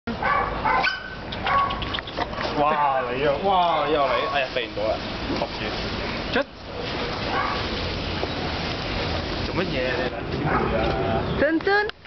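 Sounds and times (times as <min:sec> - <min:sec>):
dogs barking high-pitched: 0:00.1 - 0:02.6, 0:03.6 - 0:04.5, 0:07.2 - 0:07.8, 0:10.4 - 0:10.9.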